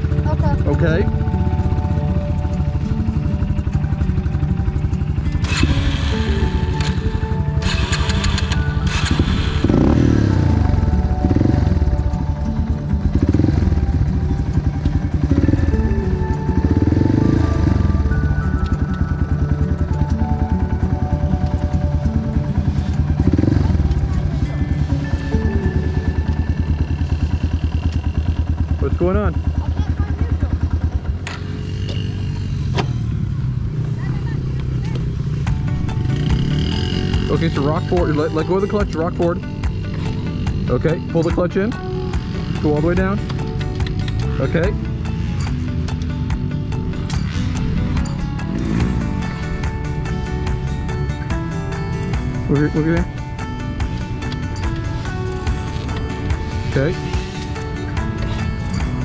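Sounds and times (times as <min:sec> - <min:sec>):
dirt bike engines idling and revving: 0:00.0 - 0:59.0.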